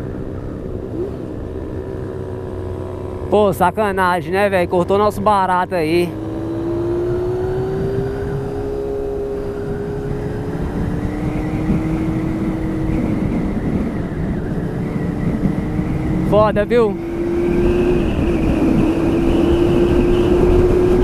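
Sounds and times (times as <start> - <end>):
motorcycle engine cruising: 0.0 - 21.0
wind and road rush: 0.0 - 21.0.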